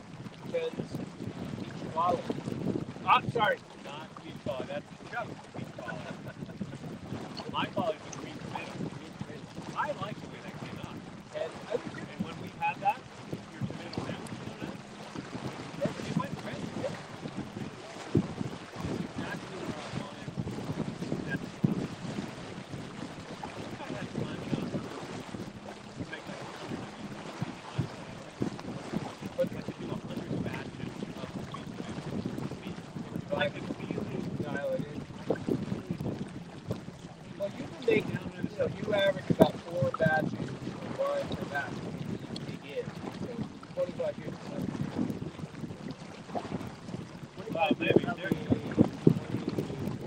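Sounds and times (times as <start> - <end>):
water washing along hull: 0.0 - 50.0
wind buffeting microphone: 0.0 - 50.0.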